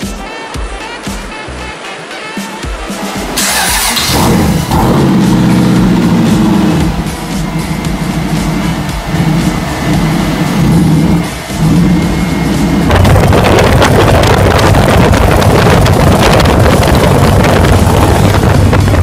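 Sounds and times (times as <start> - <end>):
motorcycle engine revving: 3.2 - 19.0.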